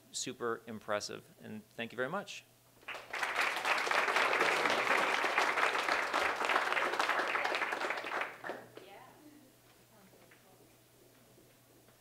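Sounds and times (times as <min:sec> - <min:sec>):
audience applauding: 0:02.8 - 0:08.8.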